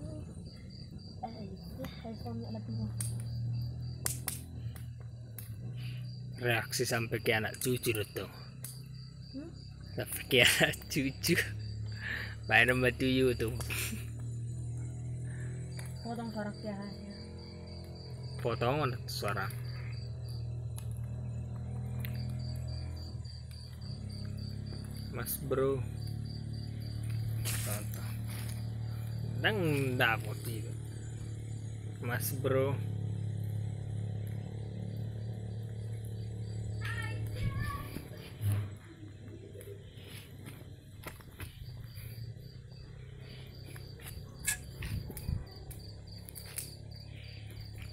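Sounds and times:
cricket chirping: 0:00.0 - 0:47.9
sharp clicks: 0:02.9 - 0:03.3, 0:03.9 - 0:05.6
low hum: 0:13.3 - 0:47.9.

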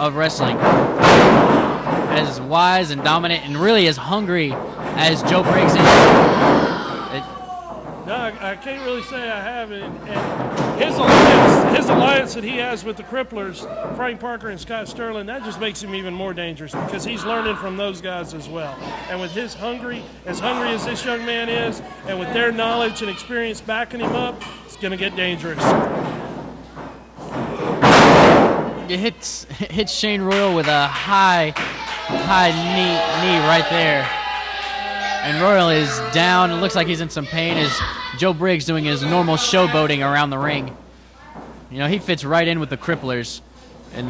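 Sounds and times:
loud slam on wrestling ring: 0:00.6 - 0:02.2, 0:04.7 - 0:07.1, 0:10.2 - 0:12.2, 0:27.4 - 0:28.8
body thud on wrestling ring: 0:05.5 - 0:06.8, 0:27.4 - 0:28.8.

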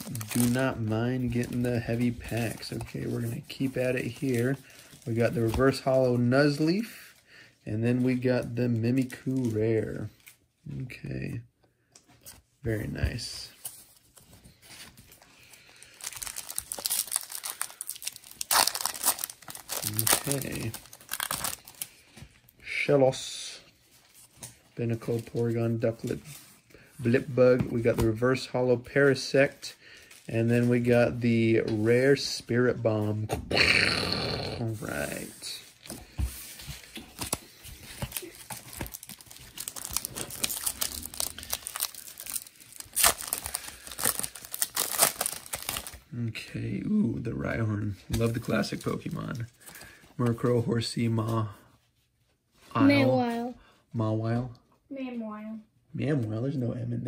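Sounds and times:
foil wrapper crinkling and tearing: 0:00.0 - 0:01.7, 0:15.4 - 0:22.0, 0:37.2 - 0:46.1.

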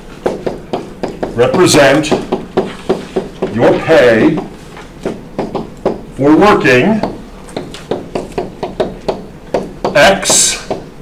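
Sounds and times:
stylus tapping on tablet: 0:00.2 - 0:06.1, 0:07.0 - 0:10.9.

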